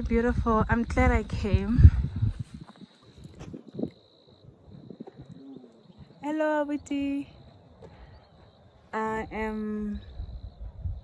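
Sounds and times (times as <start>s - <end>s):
low wind rumble: 0.0s - 11.0s.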